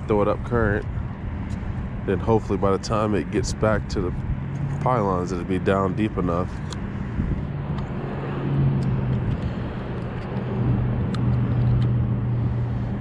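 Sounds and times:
low engine drone: 0:00.0 - 0:13.0.

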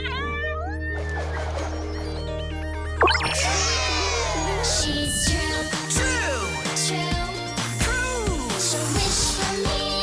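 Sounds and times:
cartoon jingle music: 0:02.2 - 0:08.4.

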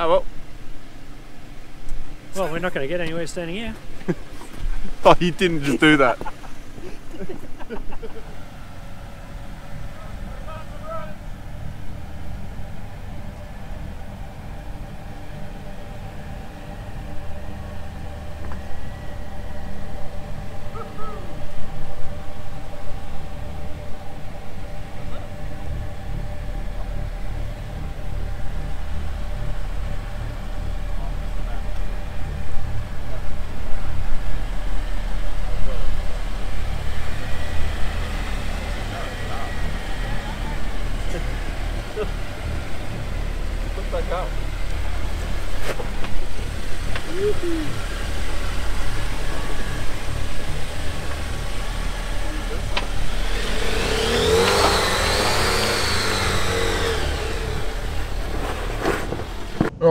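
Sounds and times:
engine running at low revs: 0:00.0 - 0:59.9.

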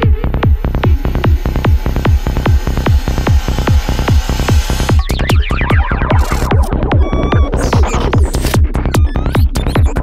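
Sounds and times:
pounding kick drum: 0:00.0 - 0:06.2
rolling bassline: 0:00.0 - 0:10.0
zapping synth effects: 0:00.3 - 0:08.2.

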